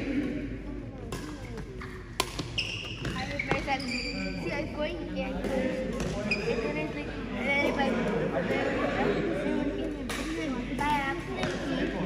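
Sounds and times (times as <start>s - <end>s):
racket hitting shuttlecock: 0.1s - 3.9s, 10.1s - 11.6s
shoes squeaking on court floor: 1.3s - 4.7s, 5.6s - 6.9s.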